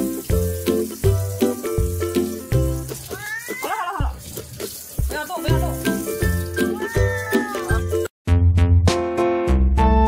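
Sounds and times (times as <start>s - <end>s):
tap water running: 0.0s - 8.1s
kitten meowing: 3.1s - 4.2s, 6.6s - 7.9s.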